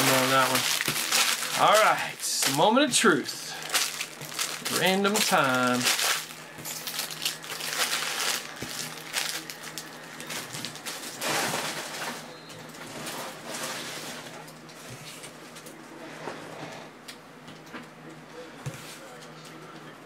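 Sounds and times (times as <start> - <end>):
plastic card sleeves rustling: 0.0 - 2.7, 3.6 - 10.8.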